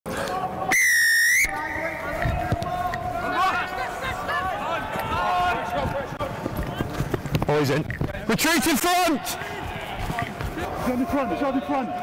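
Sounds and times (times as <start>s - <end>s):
players shouting: 0.1s - 7.0s, 8.3s - 12.0s
referee whistle blast: 0.7s - 2.1s.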